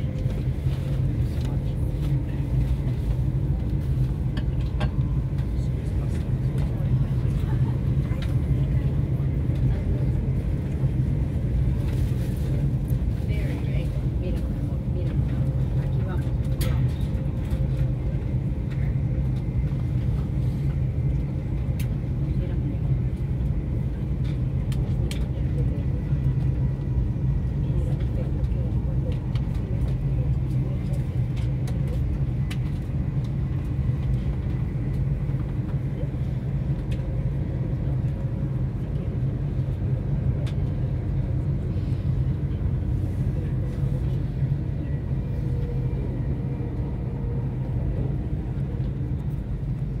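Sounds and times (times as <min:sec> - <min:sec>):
vehicle rumble from inside: 0:00.0 - 0:50.0.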